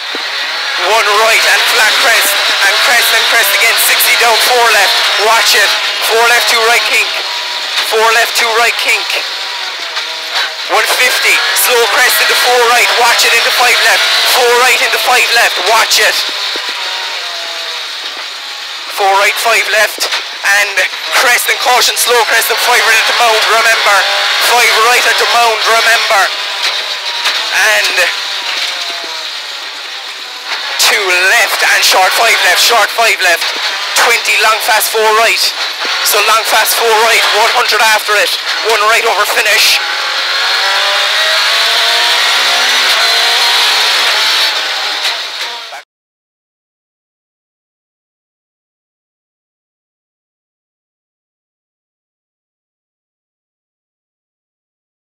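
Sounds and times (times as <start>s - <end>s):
car engine and road noise: 0.0s - 45.8s.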